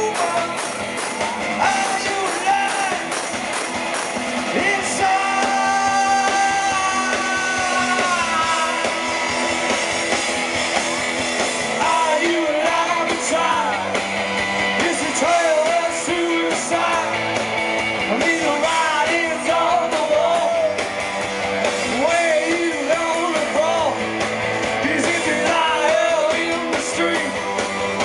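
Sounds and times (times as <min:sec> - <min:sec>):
drums: 0:00.0 - 0:28.0
electric guitars: 0:00.0 - 0:28.0.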